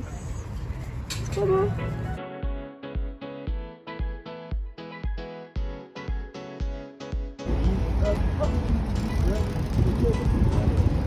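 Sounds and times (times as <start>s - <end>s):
faint voices of passers-by: 0.0s - 2.2s, 7.4s - 11.0s
street noise: 0.0s - 2.2s, 7.4s - 11.0s
wind on microphone: 8.3s - 11.0s.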